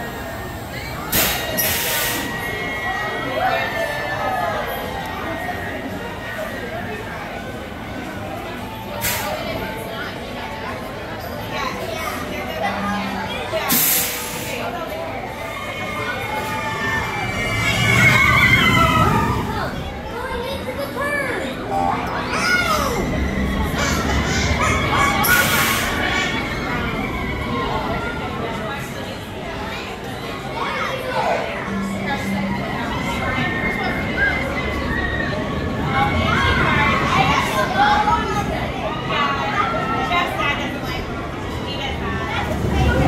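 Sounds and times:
children shouting on roller coaster: 0.0s - 13.8s, 14.6s - 43.0s
pneumatic air hiss: 1.1s - 2.3s, 9.0s - 9.3s, 13.7s - 14.6s.

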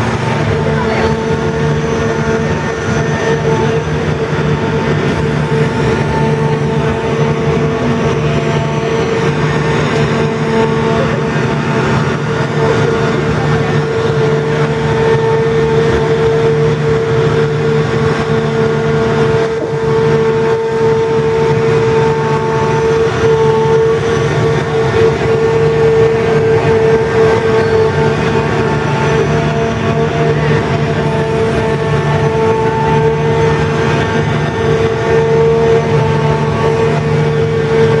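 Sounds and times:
machine engine drone: 0.0s - 38.0s.

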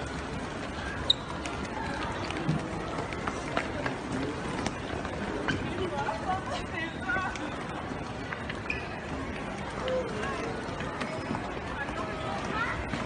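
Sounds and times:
low crowd chatter: 0.0s - 13.0s.

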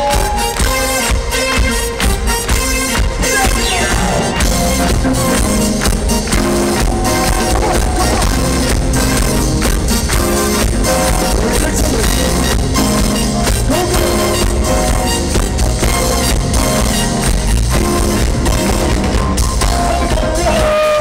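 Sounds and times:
live funk band playing: 0.0s - 21.0s.

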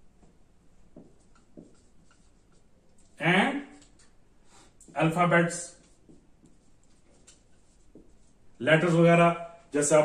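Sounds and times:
pen writing scratches: 1.0s - 3.2s, 5.8s - 8.4s.

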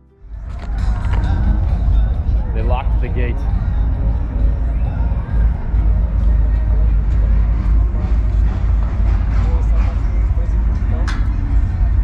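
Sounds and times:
wind buffeting microphone: 0.2s - 12.0s
faint voices: 0.3s - 12.0s.

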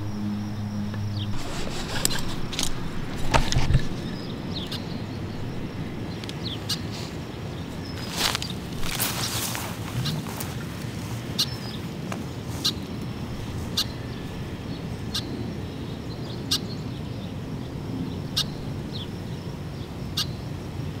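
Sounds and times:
low background rumble: 0.0s - 21.0s.

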